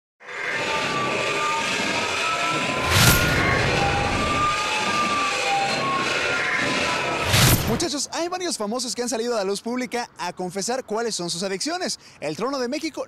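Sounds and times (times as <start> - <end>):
noisy rush: 0.5 - 8.1
loud whoosh: 2.5 - 7.9.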